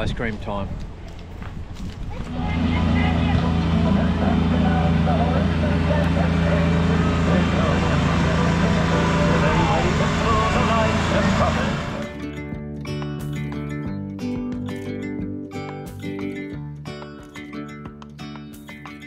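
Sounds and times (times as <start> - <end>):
small engine running: 2.3 - 12.2.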